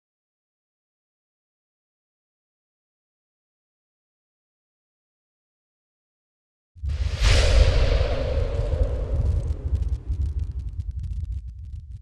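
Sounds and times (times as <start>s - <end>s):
deep rumbling boom: 6.8s - 12.0s
faint crackle: 6.8s - 12.0s.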